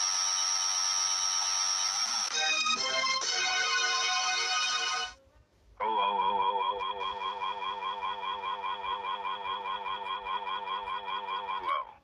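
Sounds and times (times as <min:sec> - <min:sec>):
computer voice droning: 0:05.8 - 0:12.0.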